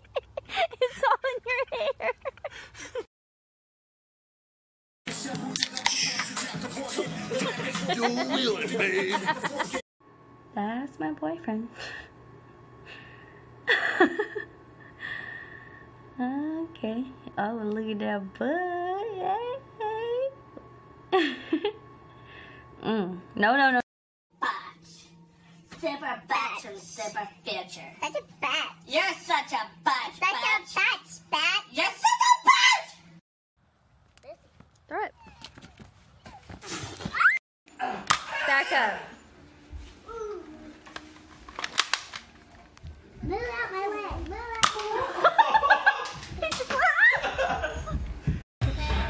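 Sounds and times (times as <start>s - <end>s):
toy dart blaster snaps: 38.0s - 38.3s, 44.6s - 44.9s.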